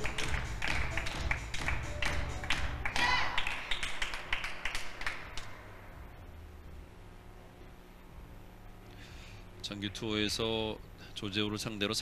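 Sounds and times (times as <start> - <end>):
small group clapping: 0.0 - 5.6.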